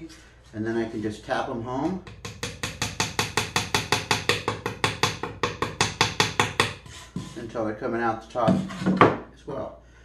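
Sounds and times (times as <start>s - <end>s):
rapid tapping with a chisel: 2.0s - 7.4s.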